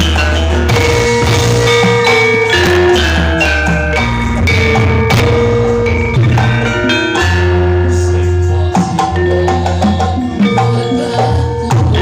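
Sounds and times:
drum: 0.0s - 12.0s
low bass: 0.0s - 12.0s
ringing metallophone notes: 0.0s - 12.0s.

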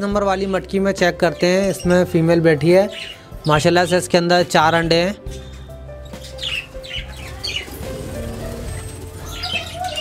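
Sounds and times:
soft background music: 0.0s - 10.0s
budgerigars chirping: 2.8s - 4.0s, 5.2s - 10.0s.

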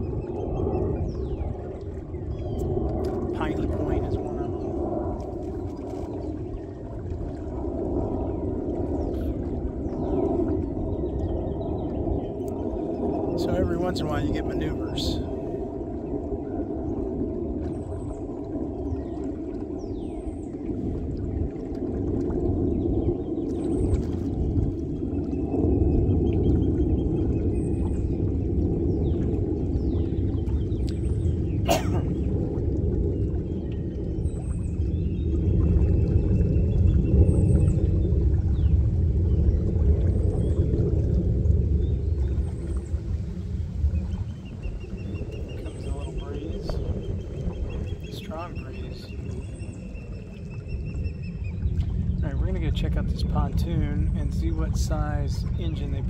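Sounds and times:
birds chirping: 0.0s - 5.0s, 8.0s - 21.0s, 43.9s - 56.0s.

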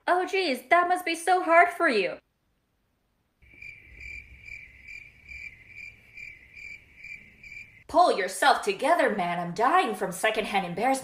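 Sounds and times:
cricket chirping: 3.4s - 7.9s.

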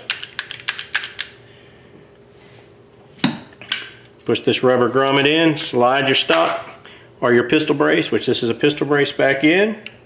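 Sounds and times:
gun parts clicking: 0.0s - 1.4s.

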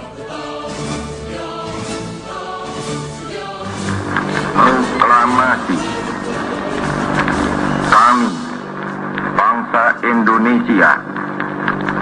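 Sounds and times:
recording hiss and hum: 3.1s - 12.0s
man speaking: 4.5s - 6.5s, 7.8s - 8.6s, 9.4s - 11.1s.

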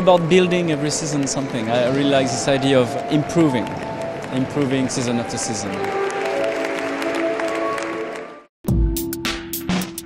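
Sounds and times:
music with long held notes: 0.0s - 10.0s
audience applause: 0.2s - 8.5s.

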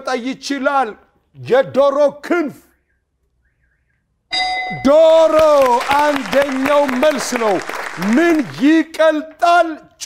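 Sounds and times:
electronic chime: 4.3s - 5.2s
man's voice: 4.7s - 10.0s.

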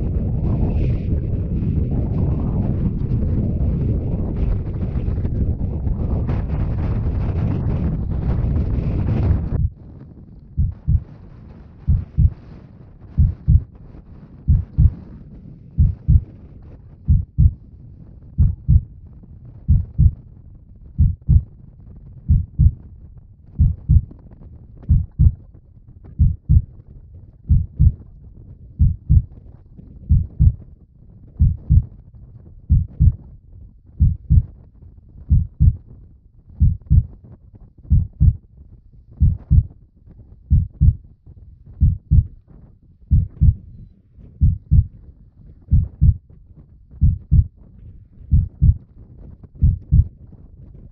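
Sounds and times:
heartbeat thumps: 9.2s - 9.8s, 10.5s - 11.1s, 11.9s - 12.4s, 13.1s - 13.7s, 14.5s - 15.0s, 15.7s - 16.3s, 17.0s - 17.6s, 18.3s - 18.9s, 19.7s - 20.2s, 21.0s - 21.5s, 22.3s - 22.8s, 23.6s - 24.2s, 24.8s - 25.5s, 26.1s - 26.8s, 27.5s - 28.0s, 28.8s - 29.4s, 30.1s - 30.6s, 31.4s - 31.9s, 32.7s - 33.2s, 34.0s - 34.6s, 35.2s - 35.8s, 36.6s - 37.2s, 37.9s - 38.4s, 39.2s - 39.7s, 40.5s - 41.0s, 41.8s - 42.4s, 43.1s - 43.7s, 44.4s - 45.0s, 45.7s - 46.3s, 46.9s - 47.6s, 48.3s - 48.8s, 49.6s - 50.1s.

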